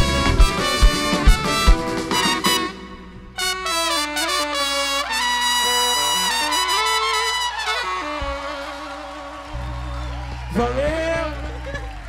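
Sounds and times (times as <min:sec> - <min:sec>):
trumpet and saxophone playing: 0:00.0 - 0:12.0.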